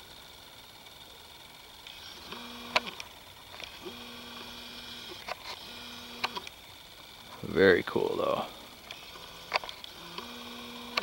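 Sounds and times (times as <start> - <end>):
small motor whining: 0.0 - 11.0
sharp clicks: 6.2 - 6.6, 8.8 - 11.0.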